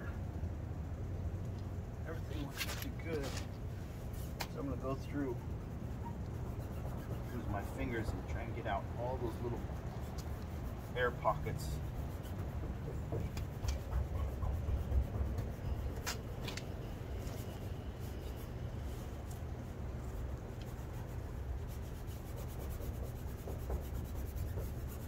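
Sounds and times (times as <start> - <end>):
steady low rumble: 0.0 - 25.0
hands rubbing vinyl film: 2.4 - 25.0.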